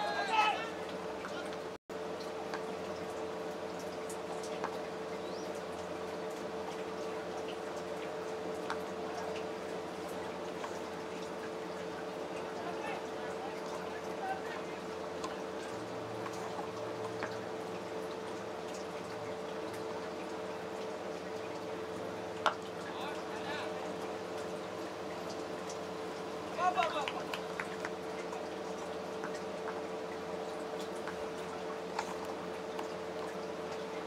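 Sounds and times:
constant hum: 0:00.0 - 0:34.0.

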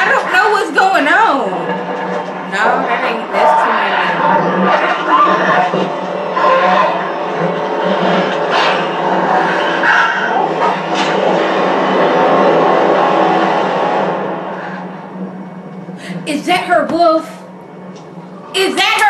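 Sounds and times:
wolves growling and snarling: 0:02.6 - 0:14.3.

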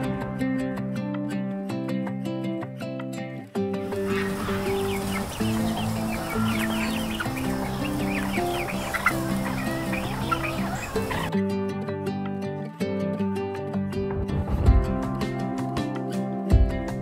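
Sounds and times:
background music: 0:00.0 - 0:17.0
chickens clucking: 0:03.8 - 0:11.3.

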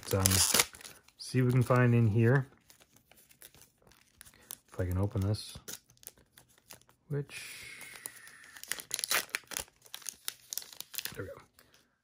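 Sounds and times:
plastic wrapper crinkling: 0:00.0 - 0:07.0, 0:07.7 - 0:11.8.

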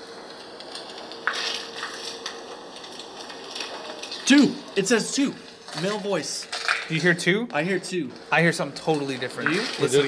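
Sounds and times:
faint steady hum: 0:00.0 - 0:10.0
steady hiss: 0:00.0 - 0:10.0
scratchy noise: 0:01.2 - 0:02.2.

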